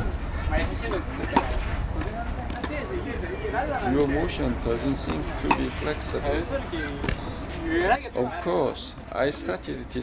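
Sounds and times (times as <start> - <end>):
voices talking: 0.0 - 10.0
tennis ball struck: 1.2 - 1.6, 5.1 - 5.7.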